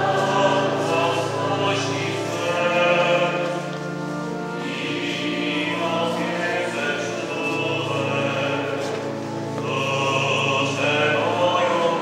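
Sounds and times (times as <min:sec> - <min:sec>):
choir singing a chant: 0:00.0 - 0:03.8, 0:04.5 - 0:09.0, 0:09.6 - 0:12.0.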